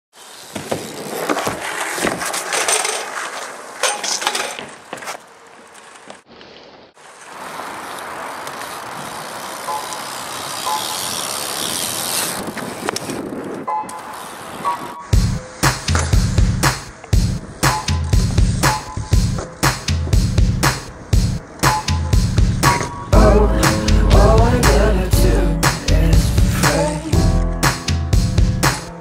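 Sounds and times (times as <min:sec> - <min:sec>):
bike tyres rolling on asphalt: 0:00.1 - 0:23.2
song with heavy beat: 0:15.2 - 0:29.0.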